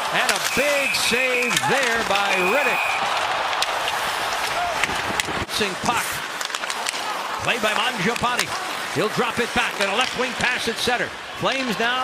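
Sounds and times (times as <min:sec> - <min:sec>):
crowd of voices: 0:00.0 - 0:12.0.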